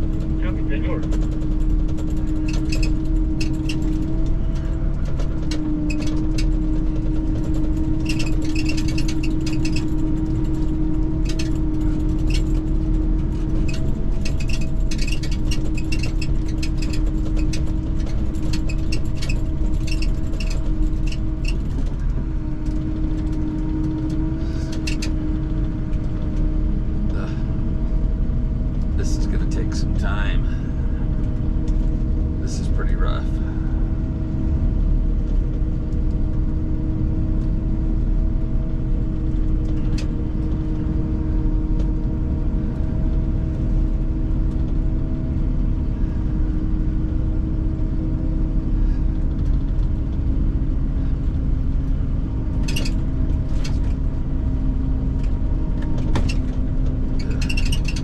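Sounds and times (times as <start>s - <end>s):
engine running steadily: 0.0s - 58.0s.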